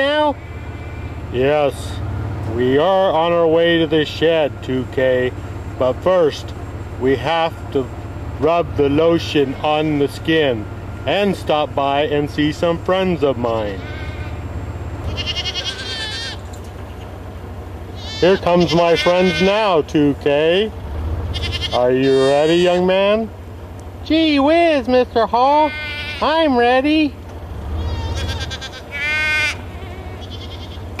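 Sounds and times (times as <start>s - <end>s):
goat bleating: 9.0s - 10.4s, 13.4s - 17.2s, 17.9s - 19.8s, 21.2s - 23.1s, 25.2s - 26.7s, 27.6s - 31.0s.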